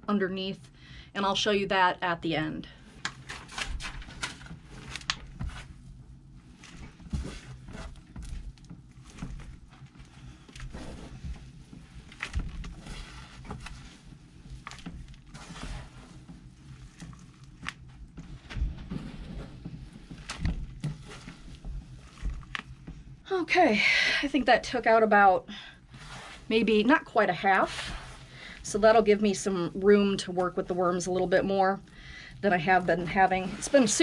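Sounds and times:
hands rustling damp bedding: 6.4 - 23.2, 25.9 - 34.0.

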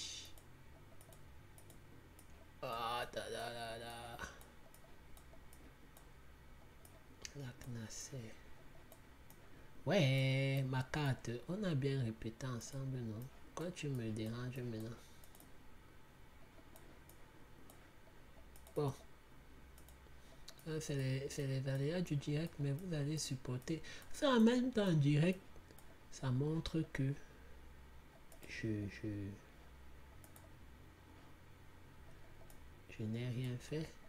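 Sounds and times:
steady low hum: 0.0 - 34.0
faint computer clicks: 0.2 - 2.5, 4.1 - 7.9, 12.6 - 15.6, 16.4 - 19.1, 19.7 - 21.1, 25.6 - 26.0, 28.1 - 28.6, 30.1 - 30.6, 32.1 - 34.0.

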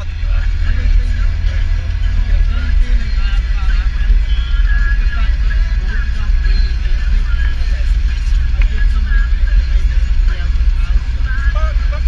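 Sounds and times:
car rumble from inside cabin: 0.0 - 12.0
song with singing: 0.0 - 12.0.

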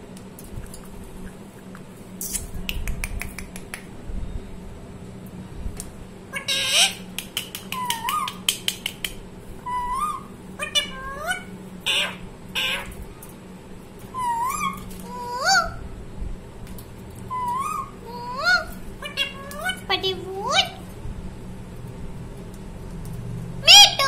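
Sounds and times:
parakeet whistled calls: 6.3 - 7.1, 7.7 - 8.6, 9.6 - 12.9, 14.1 - 15.8, 17.3 - 20.8
parakeet squawks: 6.3 - 13.0, 14.1 - 15.8, 17.3 - 20.8.

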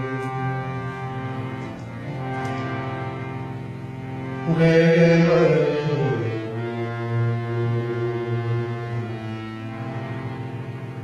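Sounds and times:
harmonium playing: 0.0 - 11.0.

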